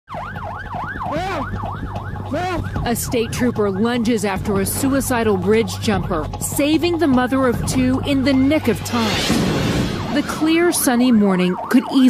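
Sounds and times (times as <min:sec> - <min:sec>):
police siren yelping: 0:00.1 - 0:06.4, 0:07.1 - 0:12.0
lower siren tone: 0:00.1 - 0:06.5, 0:07.6 - 0:12.0.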